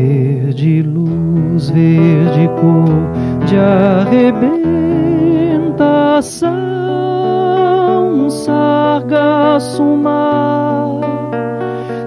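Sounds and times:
classical guitar accompaniment: 0.0 - 12.0
man singing with vibrato: 0.0 - 12.0.

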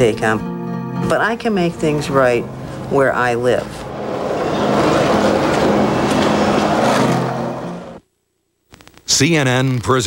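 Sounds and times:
city street traffic: 2.0 - 8.0.

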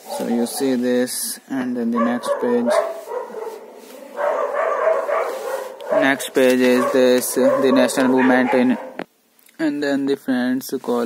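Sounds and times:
dogs barking: 1.8 - 9.1
dog howling: 1.9 - 6.2, 6.8 - 9.0.

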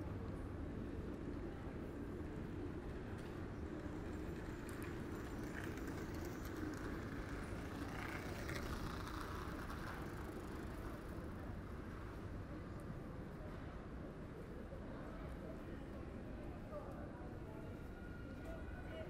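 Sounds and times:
soft passing vehicle noise: 3.7 - 12.2.

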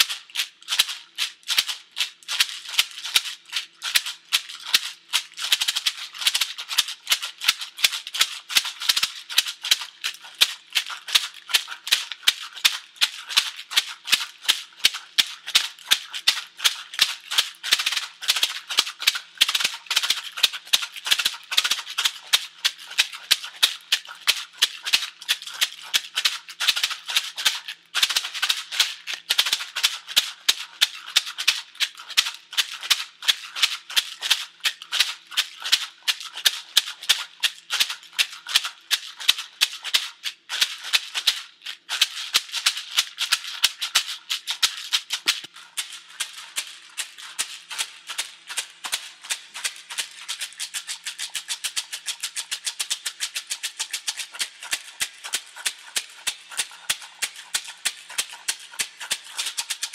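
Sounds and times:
rawhide rattle shaken: 0.0 - 59.9.

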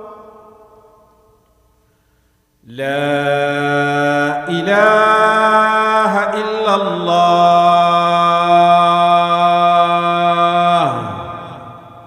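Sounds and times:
man singing call to prayer: 0.0 - 1.0, 2.6 - 12.0.

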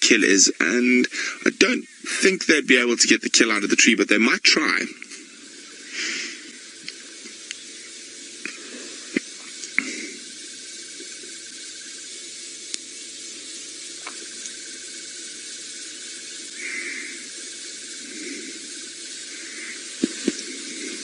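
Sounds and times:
steady hiss: 0.0 - 21.0
sharp clicks: 12.7 - 12.9.

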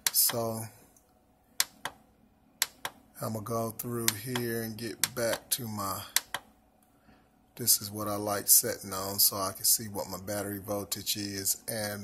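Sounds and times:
button clicks: 2.6 - 3.0.

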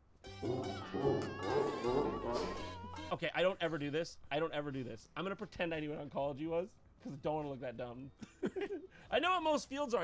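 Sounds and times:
sound effect music: 0.2 - 2.8
wavering high tone sliding down: 0.3 - 3.1
animal-like cry: 0.4 - 3.1.

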